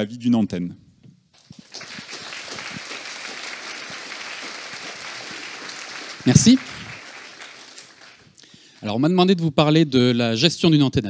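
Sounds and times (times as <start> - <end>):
audience applauding: 1.4 - 9.1.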